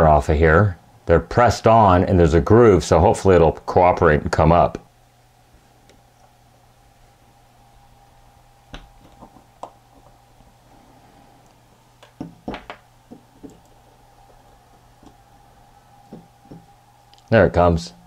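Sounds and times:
faint hum: 0:00.0 - 0:18.0.

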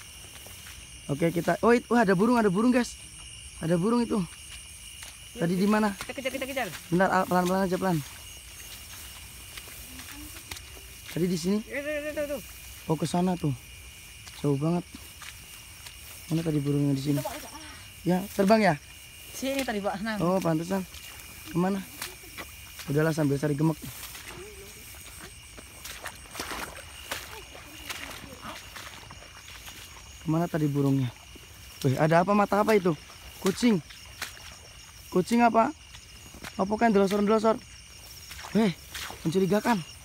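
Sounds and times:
footsteps wading through water: 0:00.0 - 0:40.0
insect chorus: 0:00.0 - 0:40.0.

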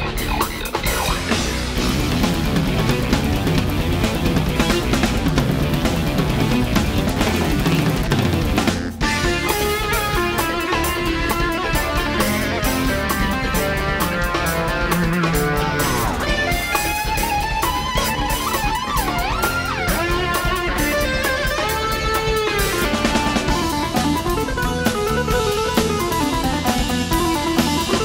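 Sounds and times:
drum kit playing: 0:00.0 - 0:28.0
keyboard lead melody: 0:01.2 - 0:28.0.

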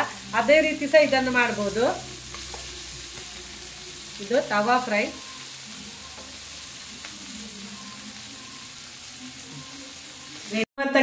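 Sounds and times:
fish sizzling in oil: 0:00.0 - 0:10.7.

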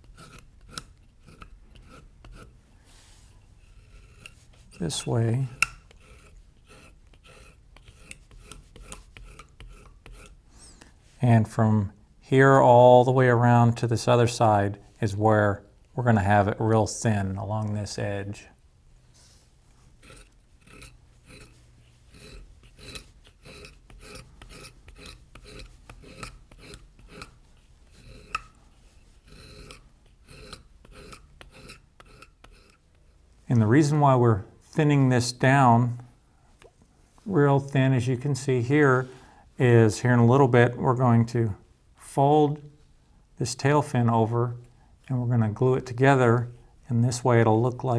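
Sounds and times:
blade scraping leather: 0:00.0 - 0:02.6, 0:03.6 - 0:10.4, 0:19.2 - 0:32.8.

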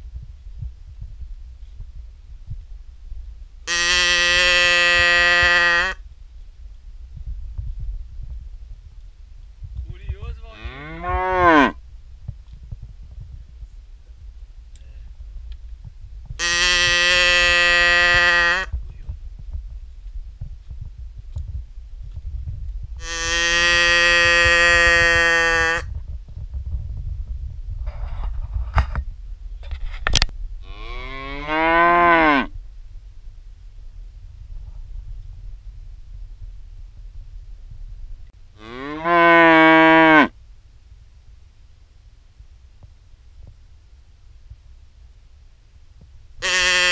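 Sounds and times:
cow mooing: 0:03.7 - 0:06.0, 0:10.5 - 0:11.8, 0:16.4 - 0:18.7, 0:23.0 - 0:25.9, 0:30.6 - 0:32.5, 0:38.6 - 0:40.3, 0:46.4 - 0:46.9.

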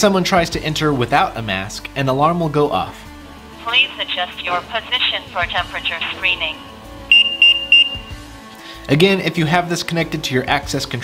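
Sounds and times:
high-pitched alarm beeps: 0:07.1 - 0:08.2.

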